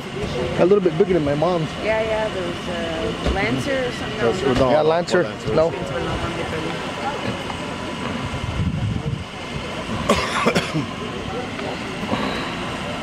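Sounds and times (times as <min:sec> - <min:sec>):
low indistinct voices: 0:00.0 - 0:13.0
outdoor background noise: 0:00.0 - 0:13.0.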